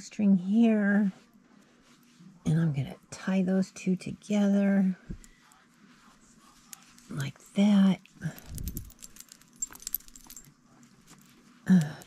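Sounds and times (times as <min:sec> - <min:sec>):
beaded bracelet clicking and jingling: 0:08.0 - 0:10.5
yarn rustle: 0:08.2 - 0:12.0.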